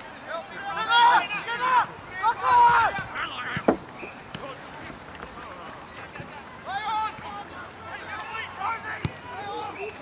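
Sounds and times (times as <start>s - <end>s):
distant players shouting: 0.3s - 4.4s
football being kicked: 3.0s - 4.4s.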